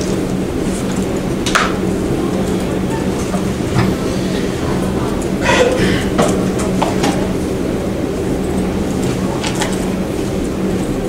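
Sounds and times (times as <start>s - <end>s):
rumbling room noise: 0.0s - 11.0s.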